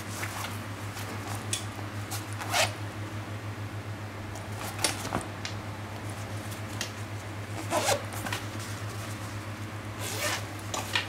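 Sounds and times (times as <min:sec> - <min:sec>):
zipper on fabric bag: 0:02.4 - 0:02.7, 0:07.6 - 0:08.1, 0:10.0 - 0:10.4.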